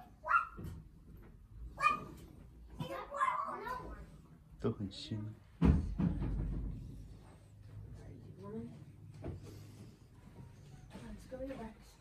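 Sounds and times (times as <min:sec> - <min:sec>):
dog barking: 0:00.1 - 0:00.7, 0:01.8 - 0:02.2, 0:03.0 - 0:03.7.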